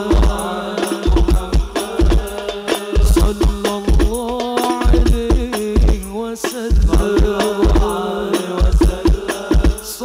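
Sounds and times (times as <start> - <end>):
chanted singing: 0.0 - 3.8, 6.9 - 10.0
darbuka drumming: 0.0 - 10.0
frame drums: 0.0 - 10.0.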